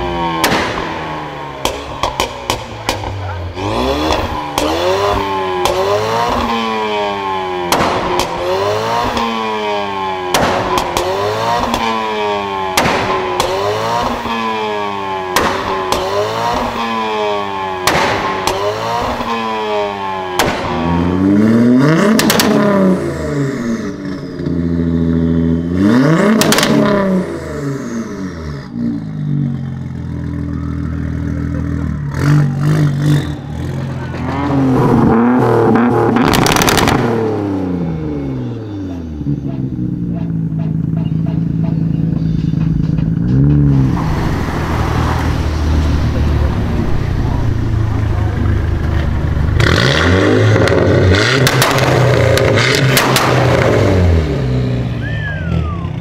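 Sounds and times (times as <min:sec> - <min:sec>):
car engine revving with bangs: 0:00.0 - 0:56.0
car engine idling: 0:37.6 - 0:56.0.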